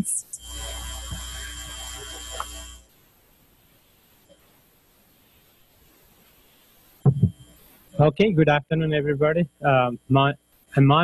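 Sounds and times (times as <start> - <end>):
electrical hum and hiss: 0.0 - 11.0.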